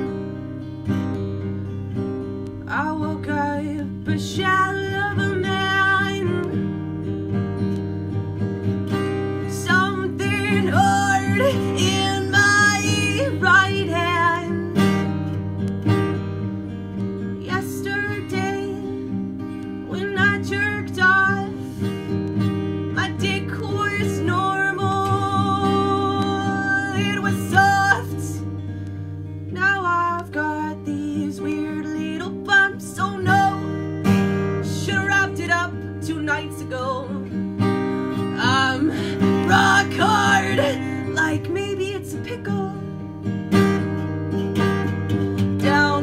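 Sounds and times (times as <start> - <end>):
acoustic guitar strumming: 0.0 - 46.0
woman singing: 2.6 - 7.0, 9.0 - 15.3, 17.2 - 28.6, 29.4 - 43.2, 45.2 - 46.0.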